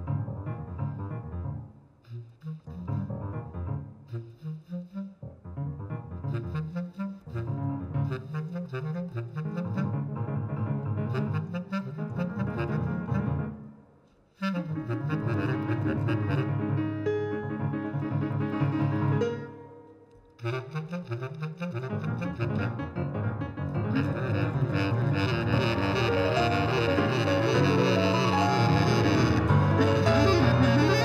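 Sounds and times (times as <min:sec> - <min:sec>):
bass clarinet: 0:00.0 - 0:13.7, 0:14.4 - 0:19.8, 0:20.4 - 0:31.0
piano playing jazz: 0:00.0 - 0:13.7, 0:14.4 - 0:31.0.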